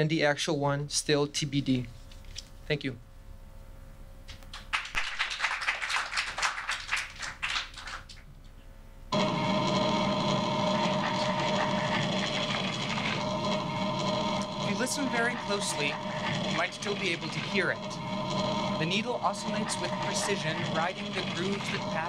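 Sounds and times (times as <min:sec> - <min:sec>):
audience clapping: 0:04.5 - 0:08.3
phonograph recording playing: 0:09.1 - 0:22.0.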